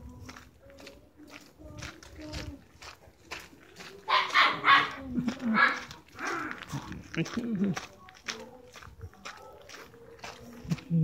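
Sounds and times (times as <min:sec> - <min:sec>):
dog barking: 0:04.0 - 0:05.9, 0:08.3 - 0:10.4.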